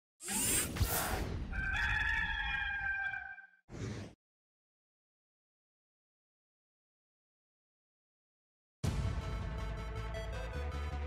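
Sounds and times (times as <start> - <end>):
rooster crowing: 1.5 - 3.6.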